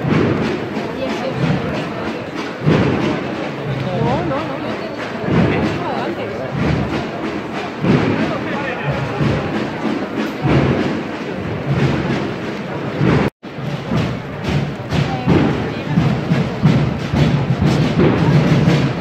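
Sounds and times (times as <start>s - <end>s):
crowd voices: 0.0s - 19.0s
drum rattle: 0.0s - 19.0s
bass drums beating slowly: 5.2s - 19.0s.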